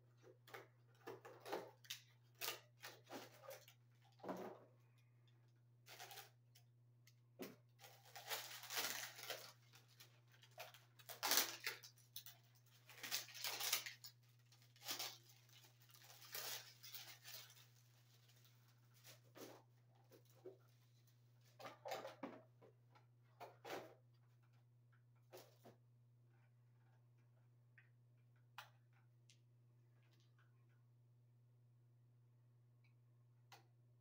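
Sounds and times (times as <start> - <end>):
scraping and rustling of cable: 0.2 - 4.7, 5.8 - 6.7, 7.7 - 22.2.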